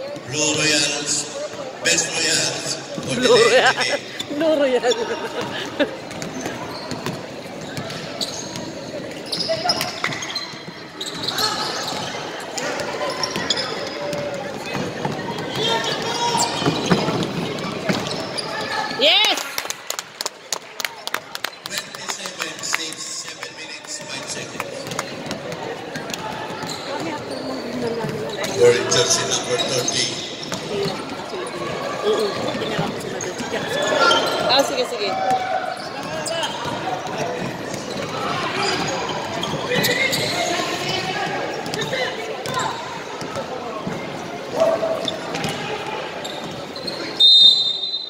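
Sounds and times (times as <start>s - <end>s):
people talking and calling out: 0.0s - 48.0s.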